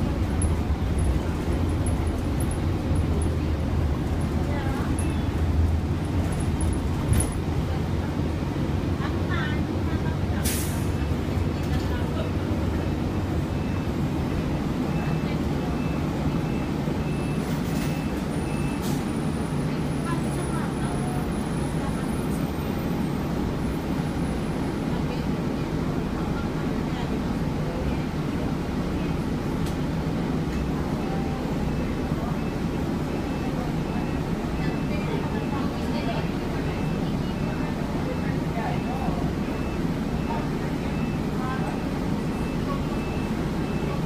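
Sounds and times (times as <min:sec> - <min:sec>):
bus engine and road noise: 0:00.0 - 0:44.0
air brake hiss: 0:10.4 - 0:10.9.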